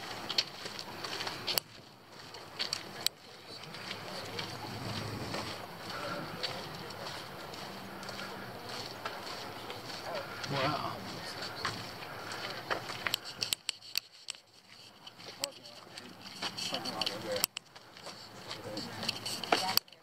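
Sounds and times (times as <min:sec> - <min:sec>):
faint voices: 0:00.0 - 0:20.0
footsteps on dirt trail: 0:00.0 - 0:20.0
camera rustling: 0:11.3 - 0:20.0
sharp clicks: 0:16.8 - 0:17.7.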